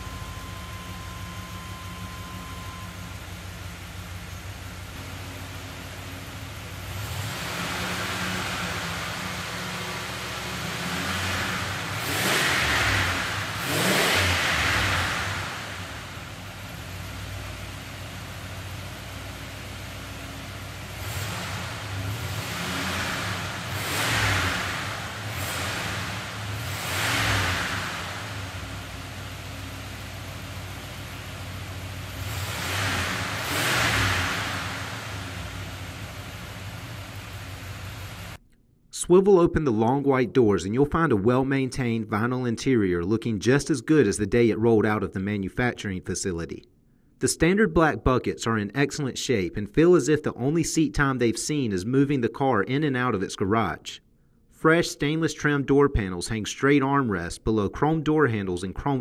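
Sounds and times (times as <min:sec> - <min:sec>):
car engine idling: 0:00.0 - 0:38.5
engine revving in short blips: 0:06.4 - 0:17.5, 0:20.4 - 0:30.4, 0:31.4 - 0:38.4.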